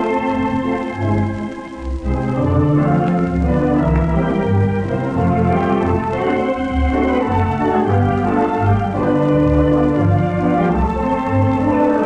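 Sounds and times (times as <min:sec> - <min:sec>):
faint record surface noise: 0:00.0 - 0:12.0
pipe organ playing chords: 0:00.0 - 0:12.0.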